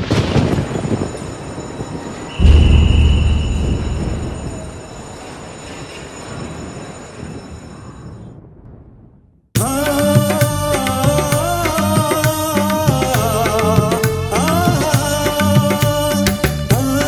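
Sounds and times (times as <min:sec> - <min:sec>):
steady high whine: 0:02.3 - 0:05.4
train rumbling: 0:02.3 - 0:06.8.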